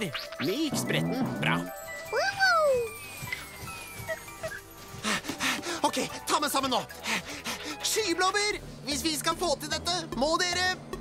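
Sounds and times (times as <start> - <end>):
high tone sliding downward: 0.2 - 4.6.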